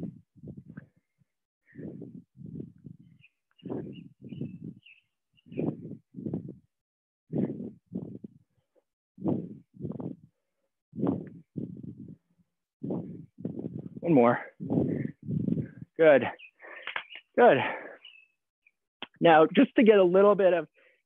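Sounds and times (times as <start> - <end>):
faint bird chirps: 3.0 - 6.0, 15.7 - 18.4
person breathing hard: 14.6 - 15.9, 16.6 - 18.1.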